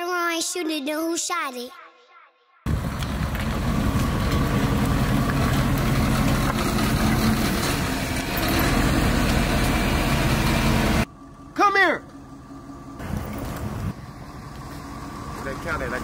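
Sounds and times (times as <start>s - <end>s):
van engine rumbling: 2.7s - 16.0s.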